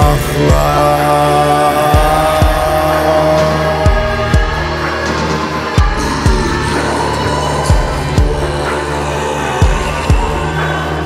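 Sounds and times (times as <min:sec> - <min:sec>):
steady deep bass: 0:00.0 - 0:11.0
sustained synth note: 0:01.6 - 0:11.0.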